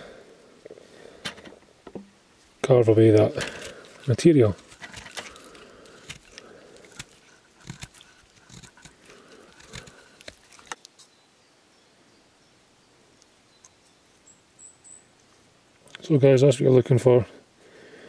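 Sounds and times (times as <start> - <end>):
knife scraping wood: 3.2 - 11.0.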